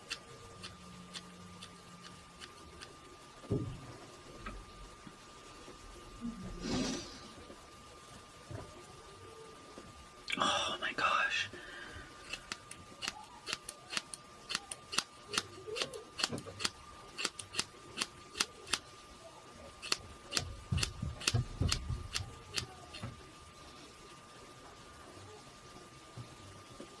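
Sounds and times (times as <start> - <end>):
scissors snipping hair: 12.2 - 18.8, 19.8 - 23.0.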